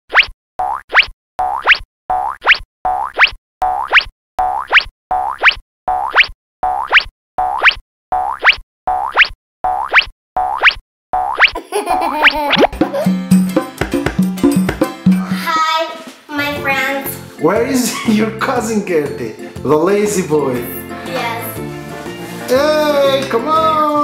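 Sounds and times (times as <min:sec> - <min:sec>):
cartoon boing sound effect: 0:03.8 - 0:13.2
music: 0:12.7 - 0:24.0.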